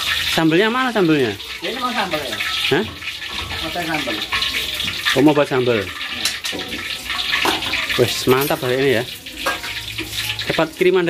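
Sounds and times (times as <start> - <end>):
oil sizzling in a frying pan: 0.0 - 11.0.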